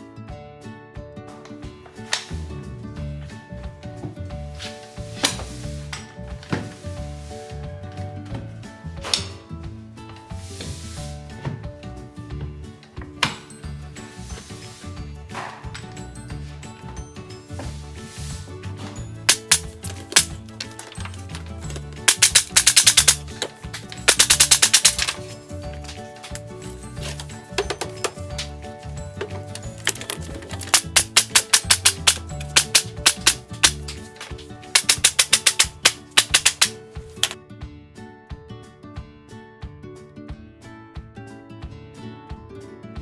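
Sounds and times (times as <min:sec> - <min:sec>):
background music with beat: 0:00.0 - 0:43.0
impact driver hammering screws: 0:19.3 - 0:20.3, 0:21.8 - 0:23.3, 0:24.0 - 0:25.2, 0:29.6 - 0:33.9, 0:34.8 - 0:37.4.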